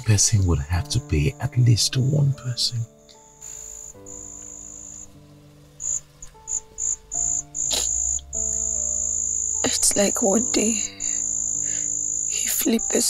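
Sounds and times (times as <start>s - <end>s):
soft background music: 0.0s - 13.0s
crickets chirping: 2.9s - 13.0s.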